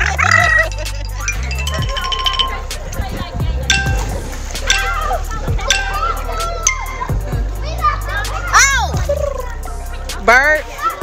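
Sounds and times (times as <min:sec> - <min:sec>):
background music: 0:00.0 - 0:11.0
children calling out: 0:03.7 - 0:09.8, 0:10.7 - 0:11.0.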